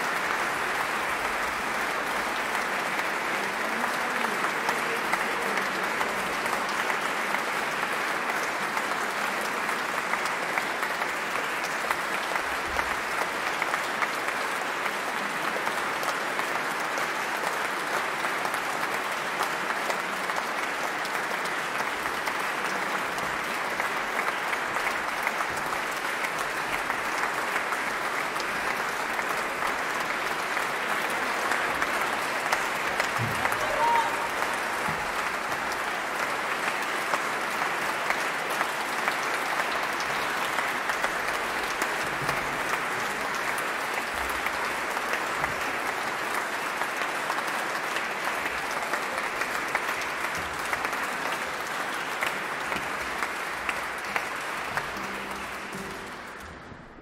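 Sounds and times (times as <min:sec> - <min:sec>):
audience applause: 0:00.0 - 0:57.0.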